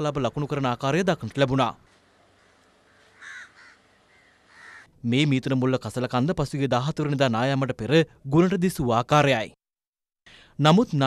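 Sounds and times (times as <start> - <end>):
faint outdoor background noise: 0.0 - 9.6
bird calling: 1.8 - 4.9.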